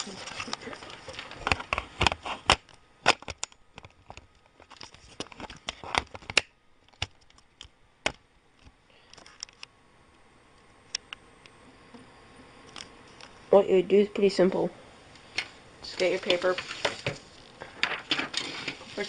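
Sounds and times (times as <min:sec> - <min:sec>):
handling clicks and crinkling: 0:00.0 - 0:09.7, 0:15.2 - 0:19.0.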